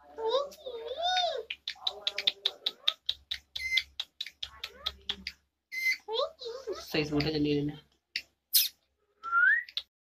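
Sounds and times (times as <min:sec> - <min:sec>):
parrot clicking: 0:00.9 - 0:05.5
parrot squeaks: 0:02.2 - 0:04.0, 0:04.6 - 0:06.9, 0:08.5 - 0:08.8.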